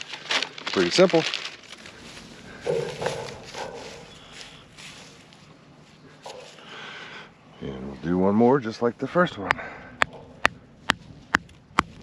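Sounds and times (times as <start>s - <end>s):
dry mulch crunching and rustling: 0.0s - 6.8s.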